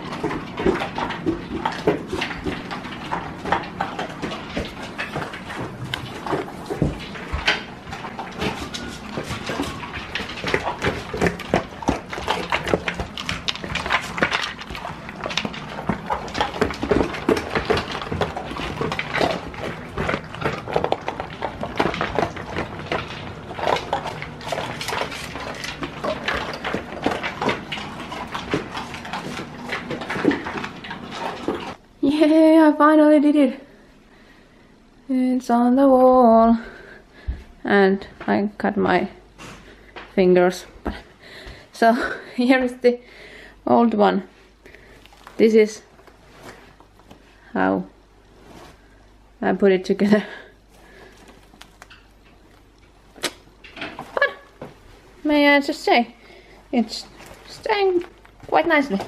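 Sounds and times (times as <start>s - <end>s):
kibble rattling and bowls knocking: 0.0s - 31.8s
dogs chewing and lapping: 0.0s - 32.2s, 39.3s - 43.3s, 43.9s - 47.8s, 49.8s - 59.0s.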